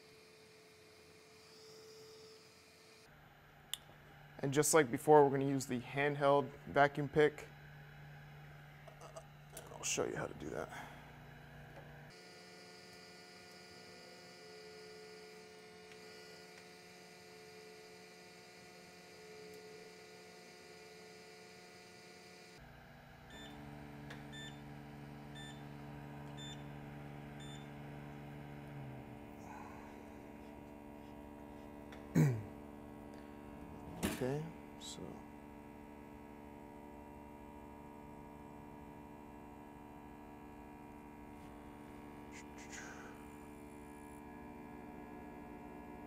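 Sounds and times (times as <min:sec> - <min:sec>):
hot-air station heater hum: 0:00.0 - 0:46.0.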